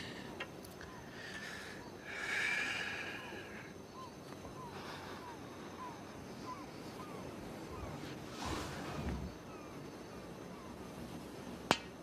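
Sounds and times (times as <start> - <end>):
faint chirp: 0.0 - 10.9.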